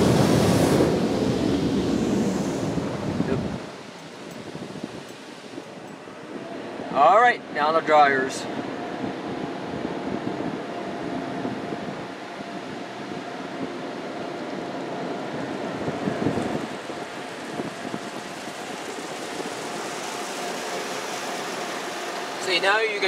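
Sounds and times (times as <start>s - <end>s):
air dryer blowers rushing: 0.0s - 23.0s
faint steady whine: 0.0s - 23.0s.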